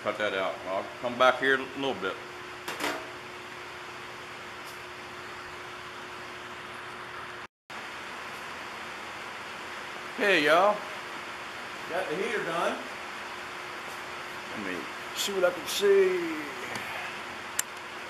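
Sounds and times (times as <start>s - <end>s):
room hiss: 7.3s - 18.0s.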